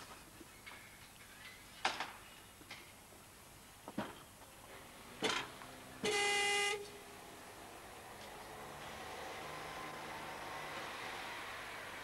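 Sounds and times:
car horn honk: 6.0s - 7.0s.

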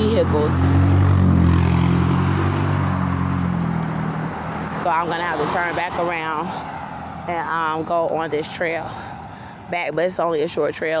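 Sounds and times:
vehicle engine driving past: 0.0s - 7.3s.

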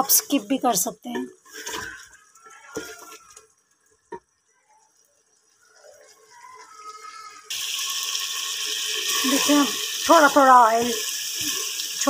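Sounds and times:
meat sizzling in oil: 5.5s - 12.0s.

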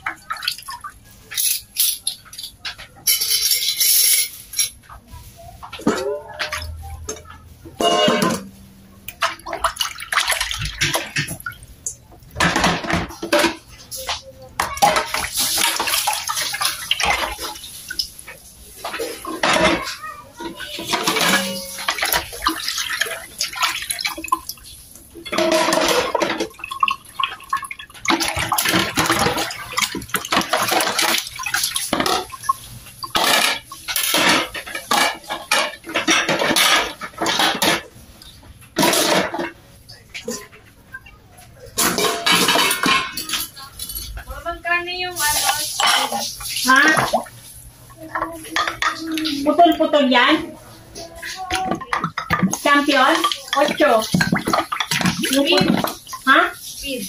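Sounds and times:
dishes knocking and clinking: 0.0s - 5.0s, 5.6s - 17.5s, 18.8s - 24.4s, 25.2s - 44.2s, 48.1s - 56.3s
water running and splashing: 0.0s - 40.6s, 41.8s - 57.0s.

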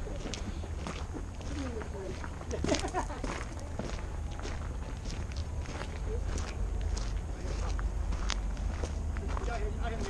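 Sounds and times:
footsteps crunching on gravel: 0.0s - 10.0s
steady low rumble: 0.0s - 10.0s.

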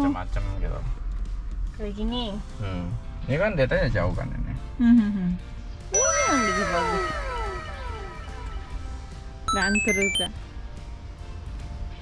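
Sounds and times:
tones sliding downward in pitch: 6.0s - 10.3s.

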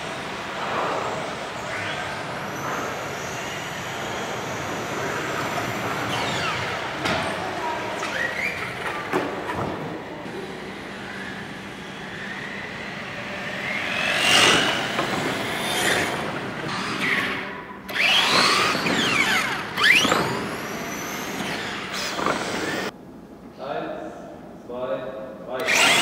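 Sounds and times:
remote-control car motors whining: 1.1s - 9.4s, 10.3s - 22.9s, 25.6s - 26.0s.

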